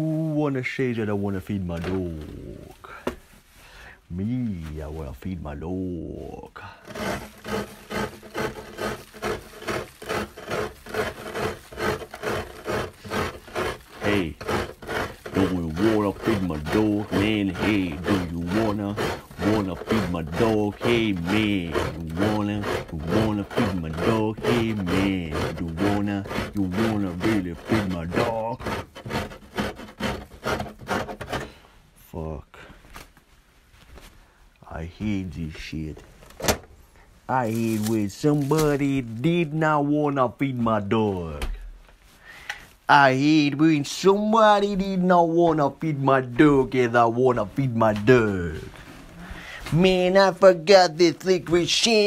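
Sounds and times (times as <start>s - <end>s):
rhythmic rasping strokes: 6.8s - 31.4s.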